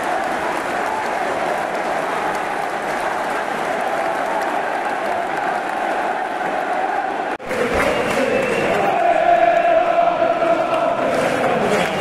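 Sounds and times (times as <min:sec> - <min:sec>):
crowd clapping: 0:00.0 - 0:12.0
crowd voices: 0:00.0 - 0:12.0.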